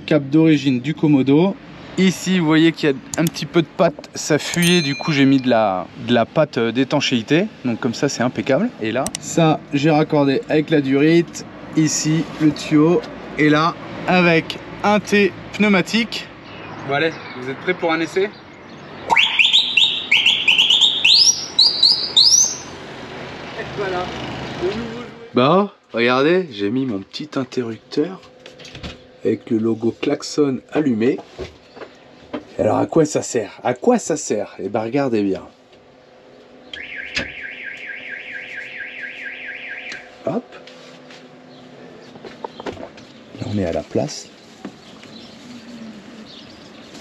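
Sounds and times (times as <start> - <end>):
electronic warbling siren: 19.1 - 22.8, 36.7 - 40.1.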